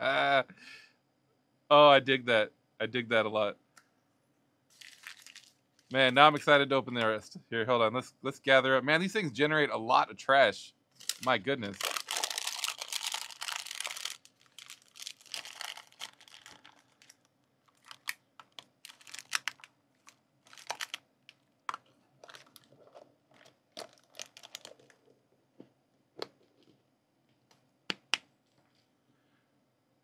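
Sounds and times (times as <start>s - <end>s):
wrapper film crinkling: 4.7s - 6.3s, 11.0s - 25.0s
plastic capsules clicking: 17.7s - 19.7s.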